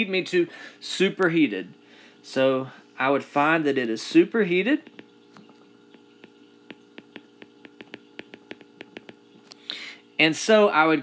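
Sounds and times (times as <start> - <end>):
faint steady hum: 0.0 - 11.0
stylus tapping on glass screen: 4.8 - 9.3.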